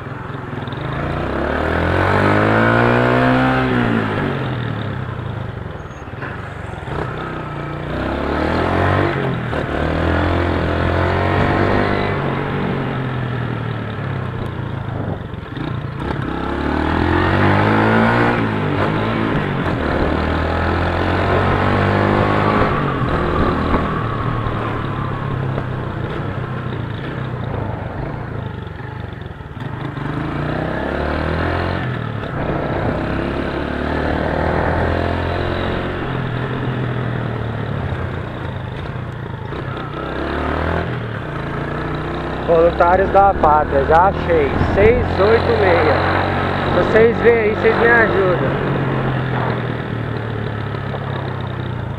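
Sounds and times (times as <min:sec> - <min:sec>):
motorcycle engine: 0:00.0 - 0:51.9
wind rushing noise: 0:21.2 - 0:26.5, 0:32.3 - 0:36.0, 0:42.2 - 0:49.8.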